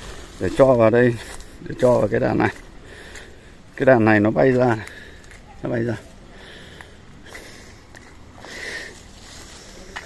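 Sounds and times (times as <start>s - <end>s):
faint footsteps on dry ground: 0.0s - 10.0s
person breathing close to microphone: 2.6s - 3.7s, 4.8s - 5.4s, 6.2s - 10.0s.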